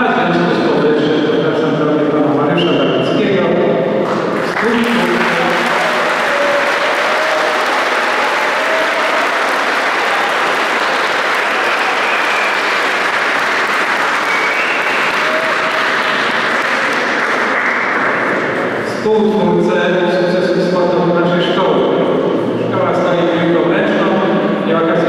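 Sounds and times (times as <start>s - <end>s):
audience applause: 4.1s - 18.8s.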